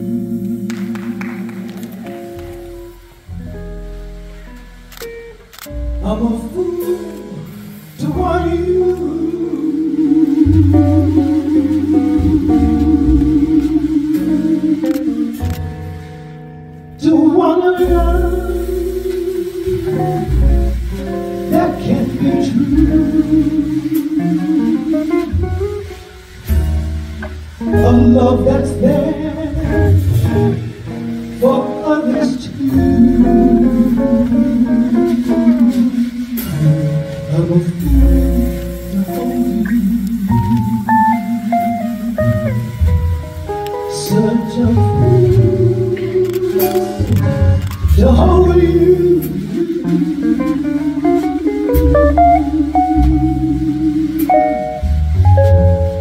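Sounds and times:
woman singing jazz ballad: 0.0s - 3.2s, 5.8s - 16.3s, 17.0s - 56.0s
electric guitar: 0.0s - 56.0s
plucked upright bass: 0.0s - 56.0s.

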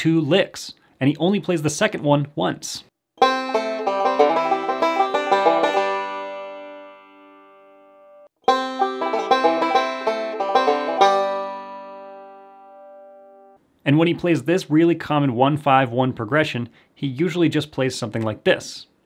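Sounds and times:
banjo rolling licks: 3.2s - 7.4s, 8.4s - 13.1s.

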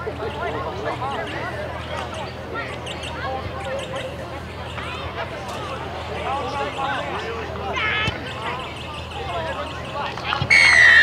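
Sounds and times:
indistinct voices talking: 0.0s - 11.0s.

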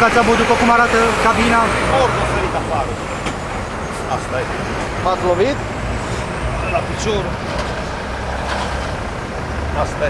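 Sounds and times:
heavy truck engines rumbling: 0.0s - 10.0s
roadside traffic noise: 0.0s - 10.0s.

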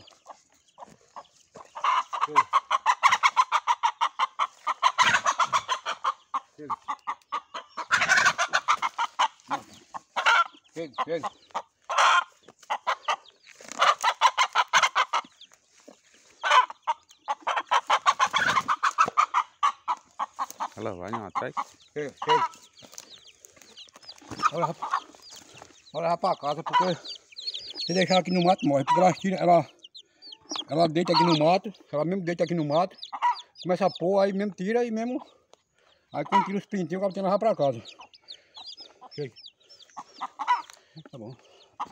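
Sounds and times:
chicks peeping: 0.0s - 41.9s
hen clucking: 0.0s - 41.9s.

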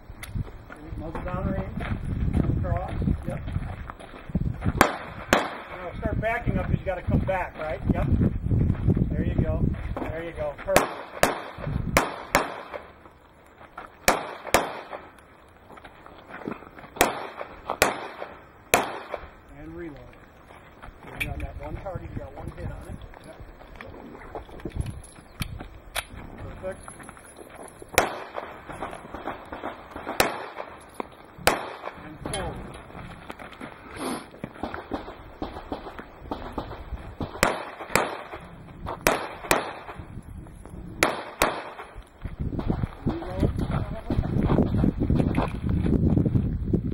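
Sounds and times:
handgun shots: 4.8s - 5.9s, 10.7s - 12.9s, 14.0s - 15.0s, 17.0s - 19.3s, 27.9s - 28.5s, 30.0s - 30.8s, 31.4s - 32.5s, 34.6s - 38.4s, 39.0s - 40.0s, 41.0s - 41.9s.

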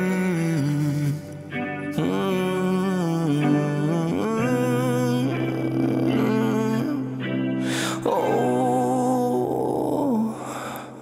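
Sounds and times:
man singing with vibrato: 0.0s - 11.0s.

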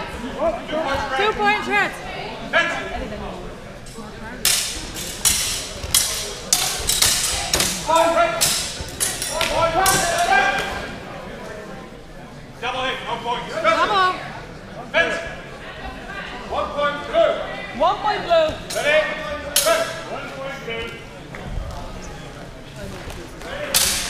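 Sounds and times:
swords striking: 4.4s - 10.3s, 23.8s - 24.0s.

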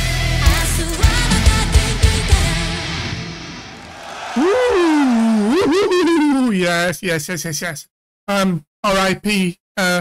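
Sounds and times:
man's drawn-out wordless exclamation: 4.0s - 6.9s.

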